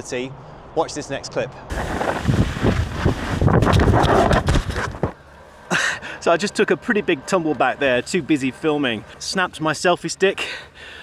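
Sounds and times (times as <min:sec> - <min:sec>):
wind buffeting microphone: 0:01.7 - 0:05.1
rough rubbing: 0:01.7 - 0:05.2
knocks and thumps of falling: 0:01.8 - 0:05.2.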